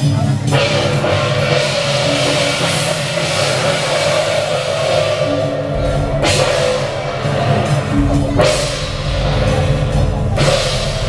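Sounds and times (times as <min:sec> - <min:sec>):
drums: 0:00.0 - 0:11.0
hand cymbals clashing: 0:00.0 - 0:11.0.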